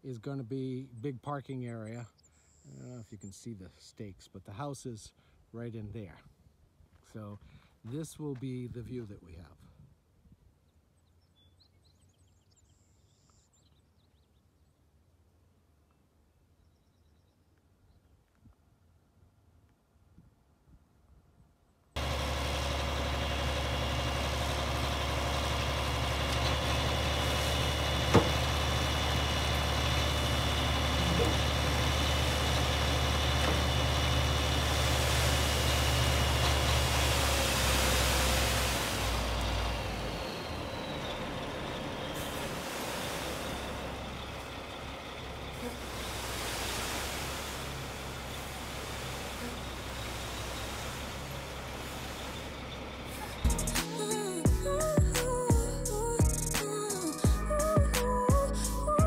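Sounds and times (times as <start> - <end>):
diesel engine running: 22.0 - 59.0
load sliding out rushing hiss: 42.2 - 44.0, 45.7 - 52.5.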